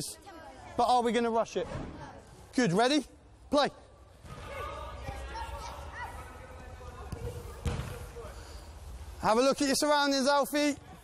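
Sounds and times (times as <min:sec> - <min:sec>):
football touches and kicks: 0:06.9 - 0:08.3.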